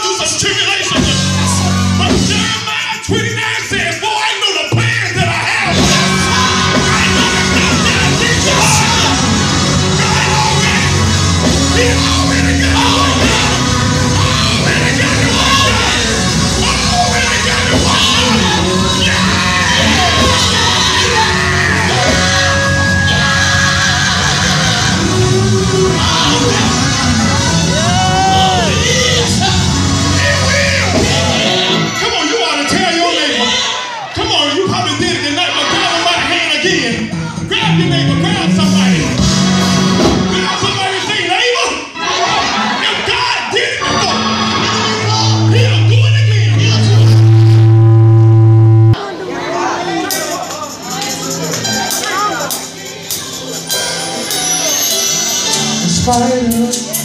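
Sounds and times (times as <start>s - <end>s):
gospel quartet singing with band: 4.7s - 33.6s
people shouting: 5.1s - 34.2s, 39.6s - 47.9s
loud low hum through sound system: 5.8s - 31.6s, 43.9s - 49.0s.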